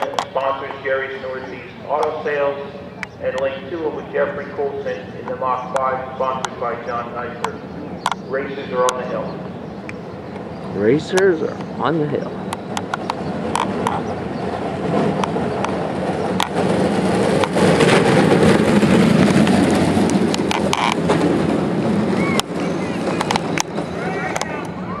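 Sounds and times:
hard wheels rolling on asphalt: 0.0s - 25.0s
spectators' voices: 22.1s - 25.0s.

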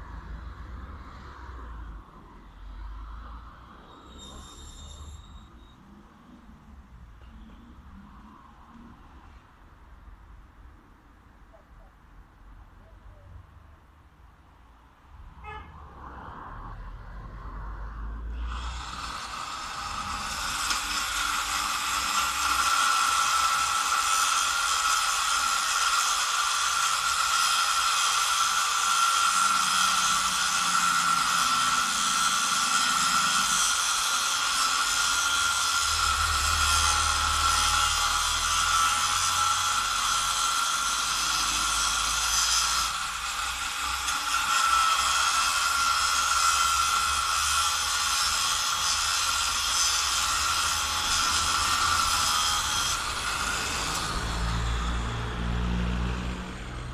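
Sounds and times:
angle grinder cutting metal: 3.8s - 5.8s, 18.3s - 56.9s.

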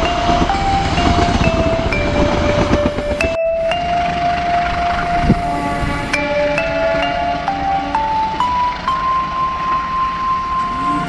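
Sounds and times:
slow electronic melody: 0.0s - 11.0s
steady background noise: 0.0s - 11.0s.

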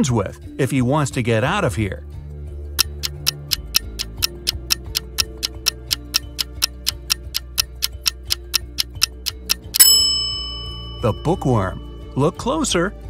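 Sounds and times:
soft background music: 0.0s - 13.0s
clock-like ticking: 2.8s - 11.6s
bright ringing chime: 9.6s - 12.4s.

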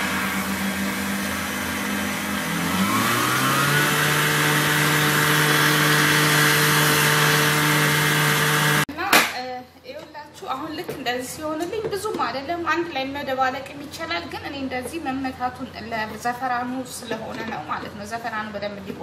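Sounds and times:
stand mixer motor hum: 0.0s - 8.9s.

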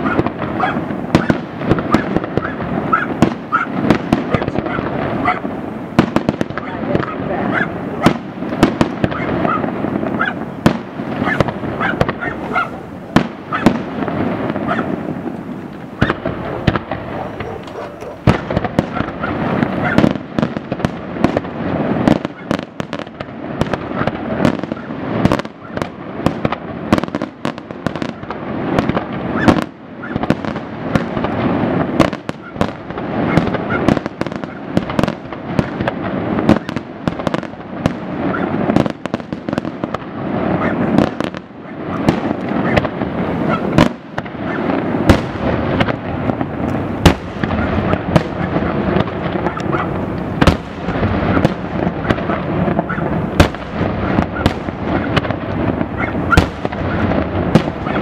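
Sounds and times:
firework crackle and rumble: 0.0s - 58.0s
firework shells bursting: 0.0s - 58.0s.

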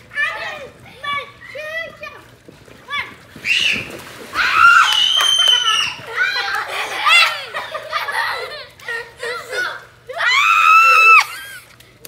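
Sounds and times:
girls shouting and talking: 0.0s - 11.7s
splash into water: 3.3s - 6.6s.

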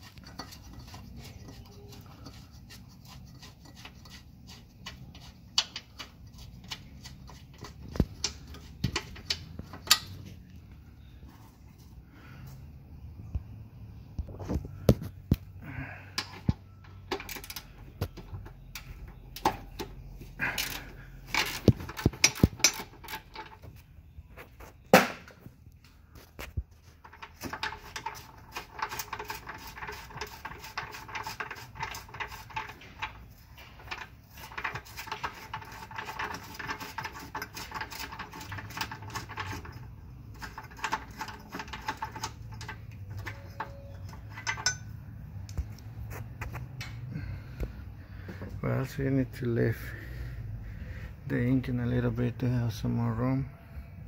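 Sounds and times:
metal tool clanks: 16.1s - 23.7s, 40.4s - 45.0s, 46.7s - 47.1s
ratchet wrench clicking: 20.6s - 23.6s.

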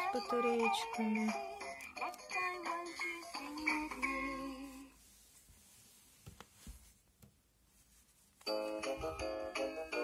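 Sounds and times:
faint taps of toy handling: 6.2s - 7.4s.

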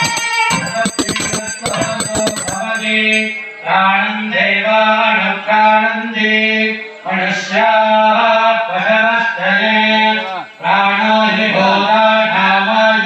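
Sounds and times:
hand bell rung rapidly: 0.0s - 3.8s.

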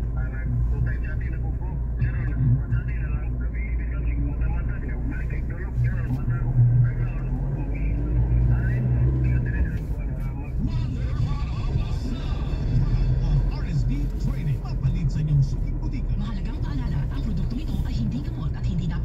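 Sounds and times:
car engine and tyres drone: 0.0s - 19.0s
muffled voices: 0.0s - 19.0s.

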